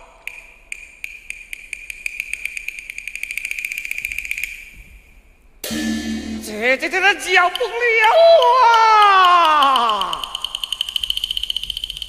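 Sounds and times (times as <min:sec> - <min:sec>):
high-pitched ringing percussion: 0:05.6 - 0:06.9.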